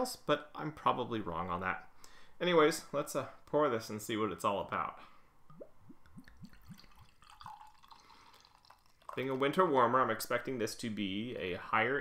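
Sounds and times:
beer glugging from bottle: 0:05.5 - 0:09.3.

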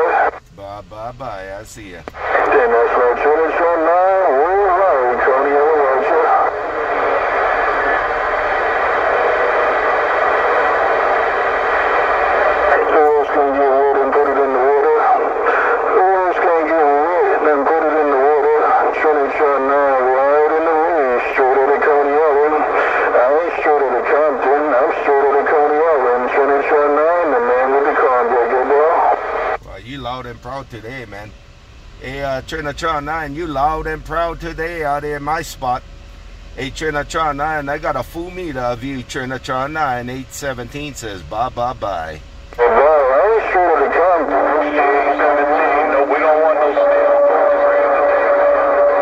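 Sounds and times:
garbled radio voice through speaker: 0:00.0 - 0:08.0, 0:12.6 - 0:31.2, 0:36.6 - 0:49.0.

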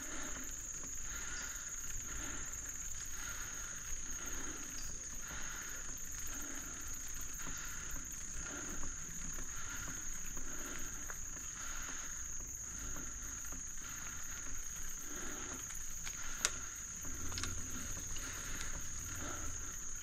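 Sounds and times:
bicycle rolling on dirt trail: 0:00.0 - 0:20.0
insects droning: 0:00.0 - 0:20.0.

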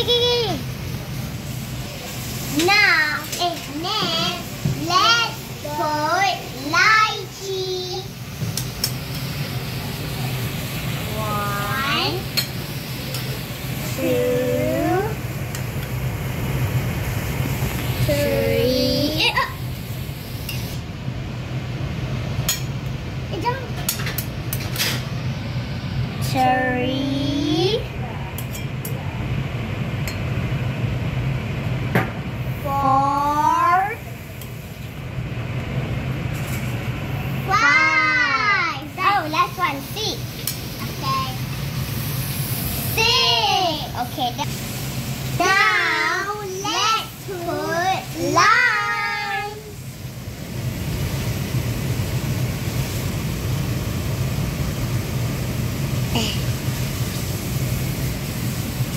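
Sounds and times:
steady low hum: 0:00.0 - 0:58.9
child sing-song calling: 0:45.4 - 0:49.7.

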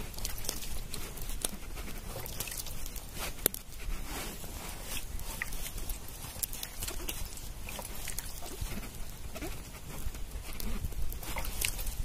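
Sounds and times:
water drips and plops: 0:00.0 - 0:03.8, 0:04.8 - 0:12.0.

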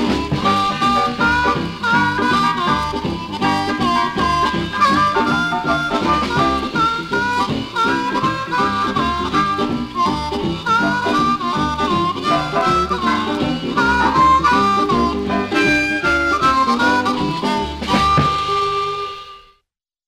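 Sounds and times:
blues band playing: 0:00.0 - 0:19.5
harmonica lead line: 0:00.0 - 0:19.6.

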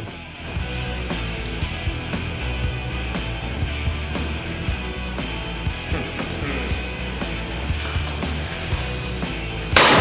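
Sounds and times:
rock music with steady beat: 0:00.0 - 0:10.0
sledgehammer smashing board and blocks: 0:09.8 - 0:10.0.

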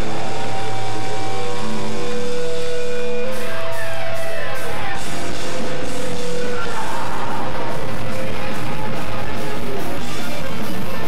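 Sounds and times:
loud distorted electric guitar: 0:00.0 - 0:11.0.

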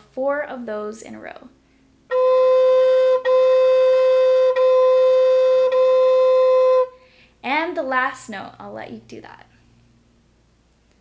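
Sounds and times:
flute playing repeated notes: 0:02.1 - 0:07.0.

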